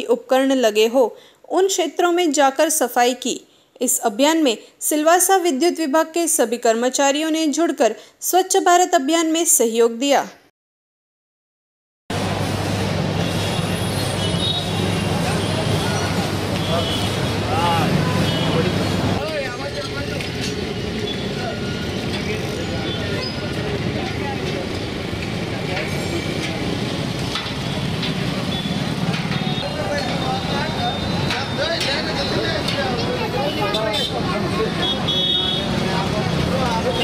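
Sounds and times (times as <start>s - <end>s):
people talking: 0.0s - 10.4s, 14.7s - 20.6s, 21.3s - 24.8s, 25.5s - 26.8s, 29.6s - 37.0s
traffic noise: 12.1s - 37.0s.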